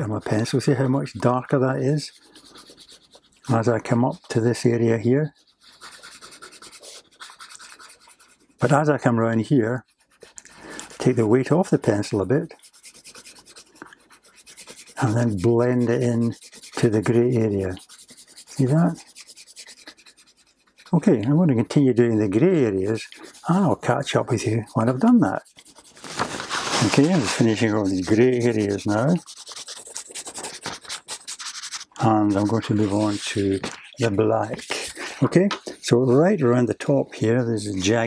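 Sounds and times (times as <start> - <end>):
pencil shading on paper: 0.0 - 8.6, 9.8 - 35.2.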